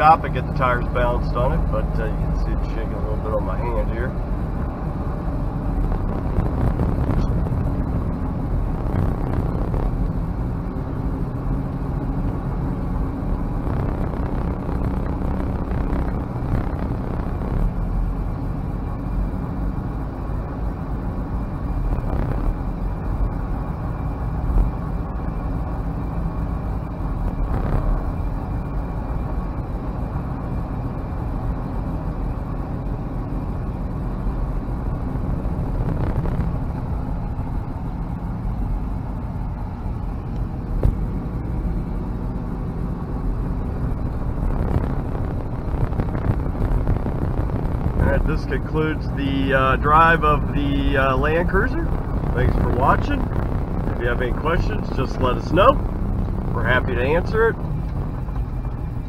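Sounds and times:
diesel engine rumble: 0.0s - 59.0s
road and tyre noise: 0.0s - 59.0s.

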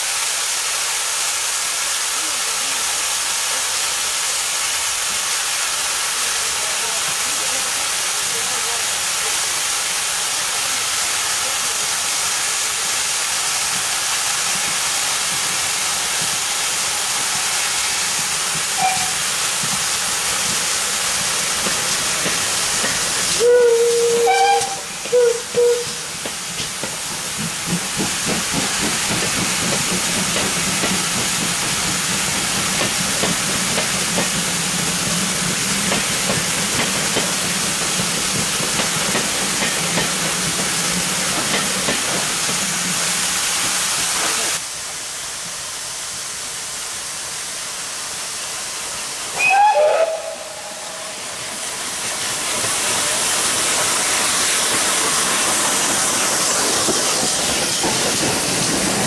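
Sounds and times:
steam locomotive hissing: 0.0s - 59.0s
steam whistle blast falling in pitch: 18.8s - 19.2s, 23.4s - 26.0s, 49.4s - 51.2s
train wheels clattering over rail joints: 24.6s - 42.9s, 52.0s - 59.0s.

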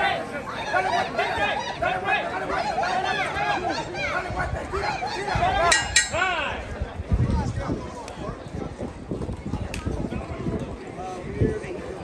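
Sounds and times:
voices calling out: 0.0s - 7.0s
sharp clinks: 5.7s - 6.2s.

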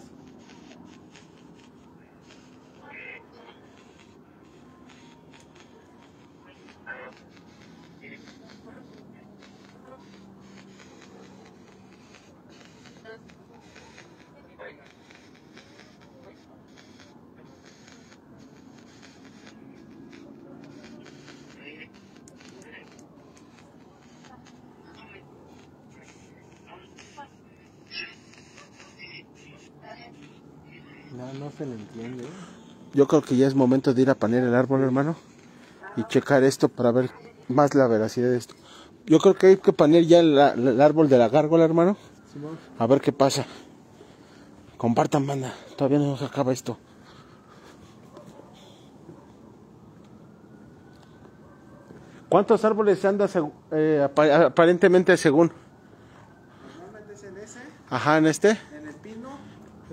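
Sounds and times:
faint indistinct voices: 0.0s - 39.8s.

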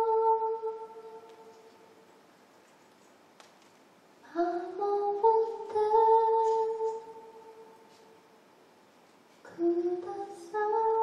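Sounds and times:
woman singing: 0.0s - 1.6s, 4.2s - 7.9s, 9.5s - 11.0s.

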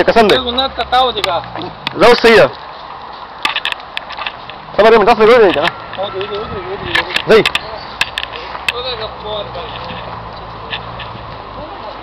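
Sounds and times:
men talking: 0.0s - 2.6s, 4.6s - 10.6s.

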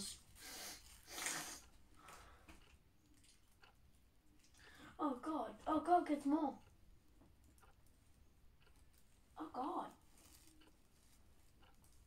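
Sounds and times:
person sniffing: 0.4s - 1.7s.

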